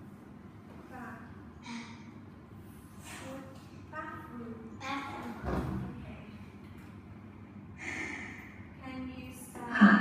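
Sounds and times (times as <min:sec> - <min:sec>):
person breathing: 0:07.8 - 0:08.7.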